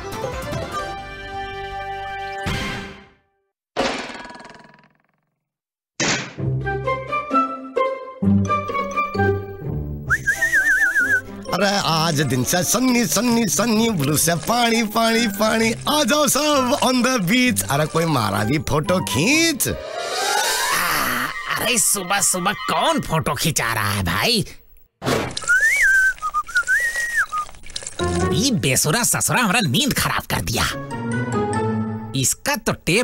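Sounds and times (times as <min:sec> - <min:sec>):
cartoon background music: 0:06.4 - 0:23.4, 0:28.0 - 0:32.4
high sliding whistle: 0:10.1 - 0:11.2, 0:25.4 - 0:27.4.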